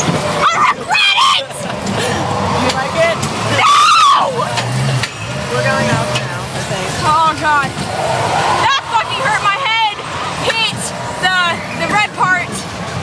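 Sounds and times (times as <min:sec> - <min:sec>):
carnival ride noise: 0:00.0 - 0:13.0.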